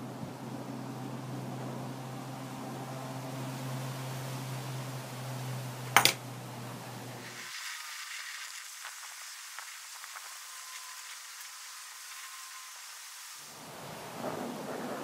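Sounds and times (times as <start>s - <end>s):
gas torch lighting pop: 5.9s - 6.2s
torch flame hissing: 7.0s - 15.0s.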